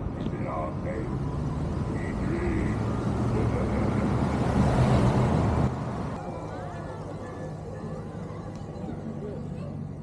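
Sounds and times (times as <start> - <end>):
road and wind noise: 0.0 - 10.0.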